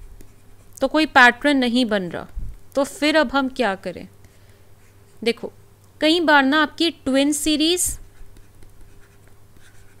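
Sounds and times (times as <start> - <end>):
low steady hum: 0.0 - 10.0
pen scratching on paper: 7.9 - 10.0.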